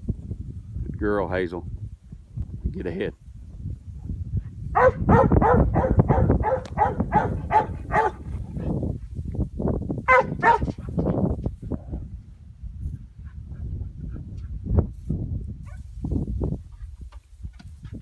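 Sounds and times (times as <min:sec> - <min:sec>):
dog barking sharply: 0:04.8 - 0:08.2, 0:10.1 - 0:10.8.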